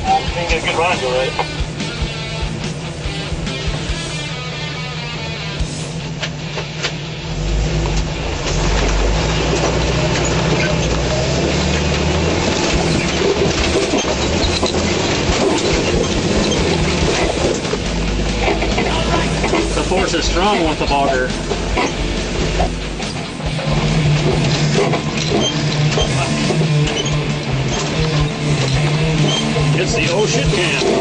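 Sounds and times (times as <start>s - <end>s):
background music: 0.0s - 31.0s
engine pulling hard under load: 0.0s - 31.0s.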